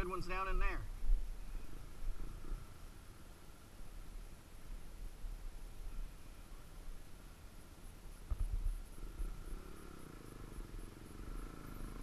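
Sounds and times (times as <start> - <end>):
dirt bike engine rumbling: 0.0 - 3.7, 8.2 - 12.0.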